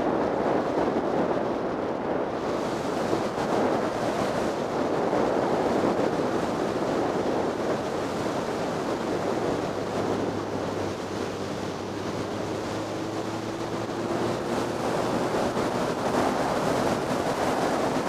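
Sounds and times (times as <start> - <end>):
wind roaring over microphone: 0.0 - 18.0.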